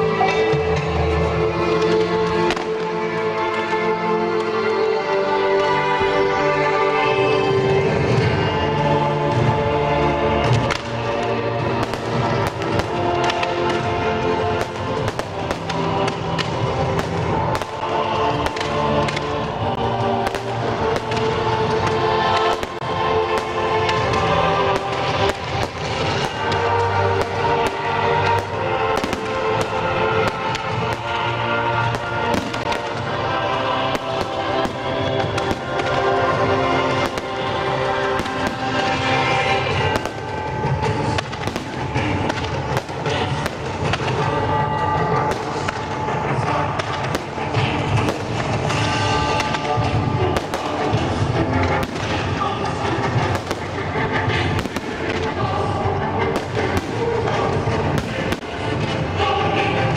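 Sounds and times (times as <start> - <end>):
fireworks bursting with bangs: 0.0 - 4.5, 10.3 - 59.9
fireworks crackling: 0.0 - 59.9
music: 0.0 - 59.9.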